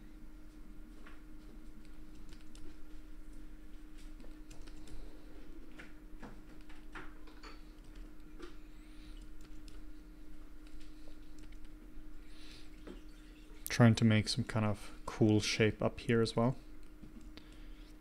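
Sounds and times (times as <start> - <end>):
faint steady hum: 0.0 - 18.0
keyboard keys clicking: 1.8 - 2.8, 4.2 - 5.0.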